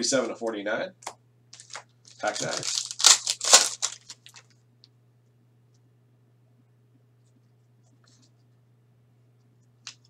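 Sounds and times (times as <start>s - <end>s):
foil pack tearing: 1.6s - 4.5s.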